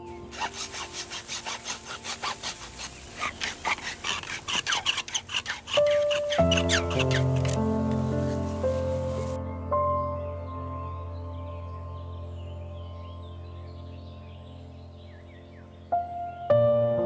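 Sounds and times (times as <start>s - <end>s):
background music: 0.0s - 17.0s
hacksaw cutting bamboo: 0.3s - 7.7s.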